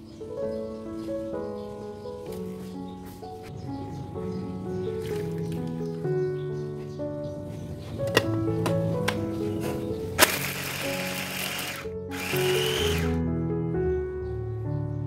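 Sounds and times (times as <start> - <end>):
soft piano music: 0.0 - 15.0
food processor motor grinding: 10.2 - 13.2.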